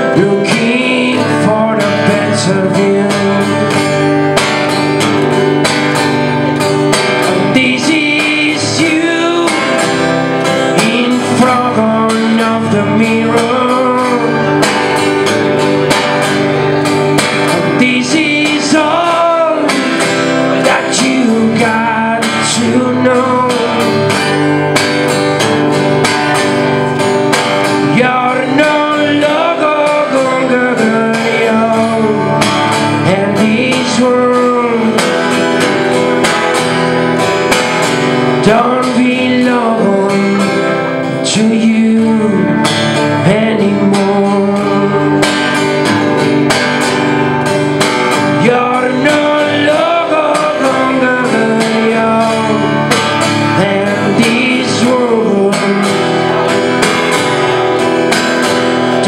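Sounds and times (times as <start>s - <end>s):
man singing: 0.0s - 4.4s, 6.3s - 24.9s, 26.4s - 36.4s, 38.1s - 46.5s, 48.0s - 57.4s
acoustic guitar strumming: 0.0s - 59.0s.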